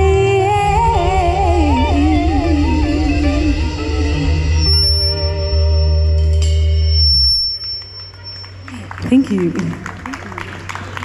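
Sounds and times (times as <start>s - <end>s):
thin steady high tone: 4.6s - 8.8s.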